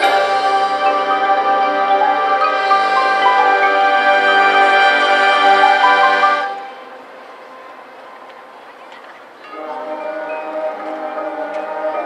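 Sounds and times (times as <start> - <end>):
bell-like keyboard percussion: 0.0 - 4.6
marching band playing: 0.0 - 7.0, 9.5 - 12.0.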